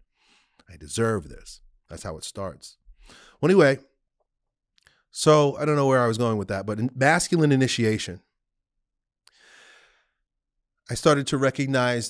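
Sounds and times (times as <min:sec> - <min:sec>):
man breathing softly: 0:00.0 - 0:00.7, 0:02.9 - 0:03.4, 0:09.3 - 0:10.2.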